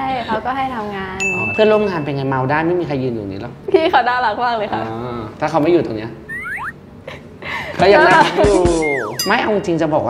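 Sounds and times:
squeaky whistle-like glides: 6.3s - 6.8s, 8.7s - 9.4s
person speaking: 8.0s - 9.6s.

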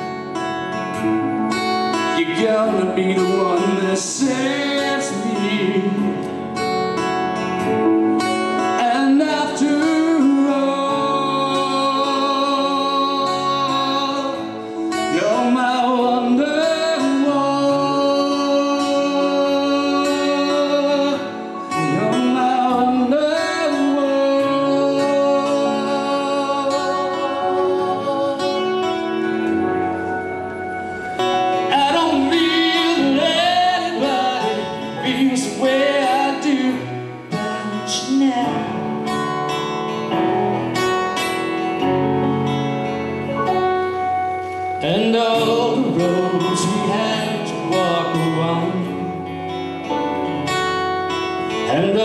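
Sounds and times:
strummed acoustic guitar: 0.0s - 52.0s
man singing: 1.8s - 7.0s, 8.5s - 30.1s, 31.3s - 39.4s, 44.7s - 49.6s, 51.5s - 52.0s.

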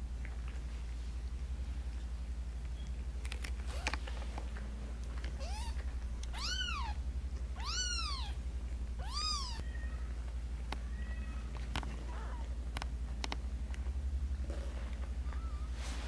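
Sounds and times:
steady low hum: 0.0s - 16.0s
kitten mewing: 5.4s - 7.0s, 7.6s - 8.4s, 9.0s - 10.1s.

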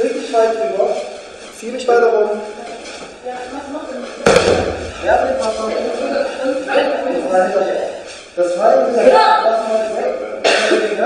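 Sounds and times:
body landing on gym mat: 4.2s - 5.2s.

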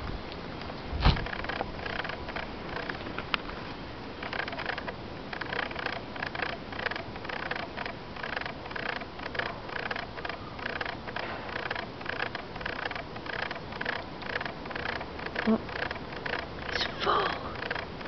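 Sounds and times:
rasping animal calls: 4.2s - 18.0s.

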